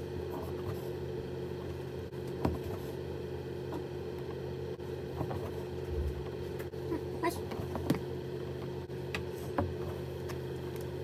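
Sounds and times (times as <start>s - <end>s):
low hum: 0.0s - 7.2s.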